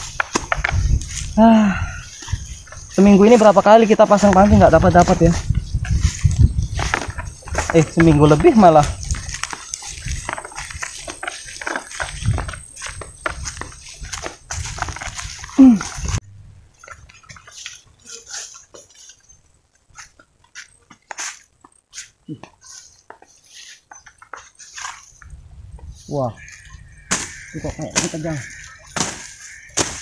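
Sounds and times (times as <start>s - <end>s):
footsteps through grass: 0.0s - 30.0s.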